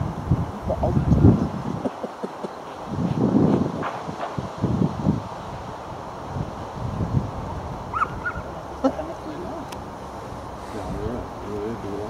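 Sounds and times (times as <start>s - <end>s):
open-air background noise: 0.0s - 12.0s
wind buffeting microphone: 0.0s - 12.0s.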